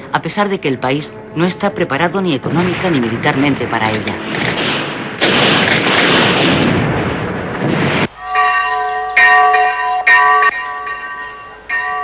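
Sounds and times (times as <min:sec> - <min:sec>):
church bell tolling: 0:08.2 - 0:12.0.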